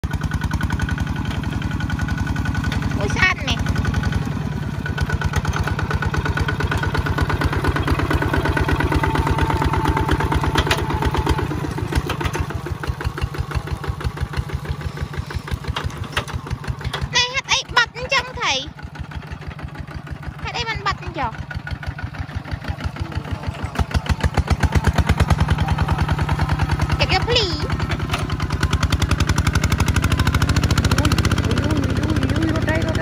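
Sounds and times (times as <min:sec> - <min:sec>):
diesel engine chugging: 0:00.0 - 0:33.0.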